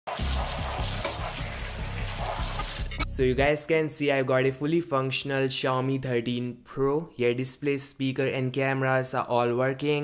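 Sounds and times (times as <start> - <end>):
water jet splashing: 0.1 - 2.9
low regular beat: 0.2 - 3.5.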